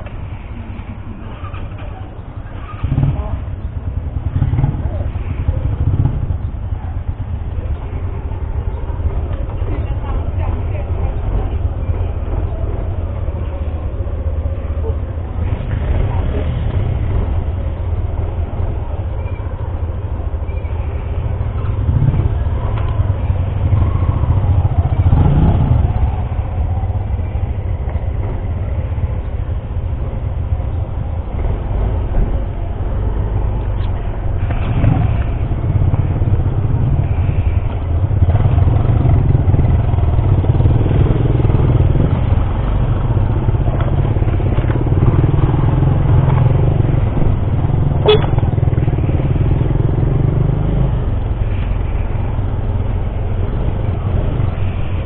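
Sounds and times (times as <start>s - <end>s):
scooter engine rumble: 0.0s - 55.0s.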